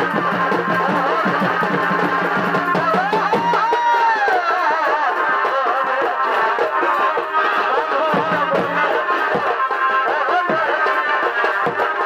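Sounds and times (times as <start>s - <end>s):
fast driving drum rhythm: 0.0s - 12.0s.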